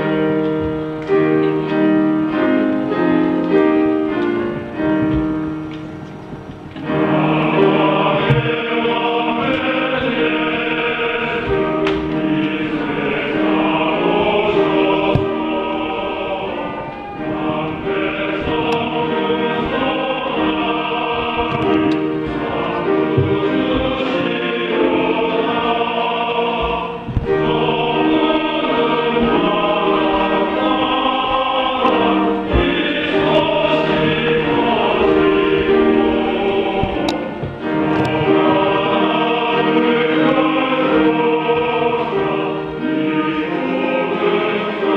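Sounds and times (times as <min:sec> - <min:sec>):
men's choir singing a hymn: 0:00.0 - 0:44.9
piano: 0:00.0 - 0:44.9.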